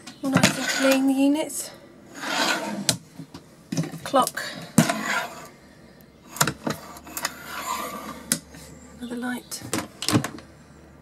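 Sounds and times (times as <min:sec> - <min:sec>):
locker door scraping shut: 0:02.1 - 0:02.9.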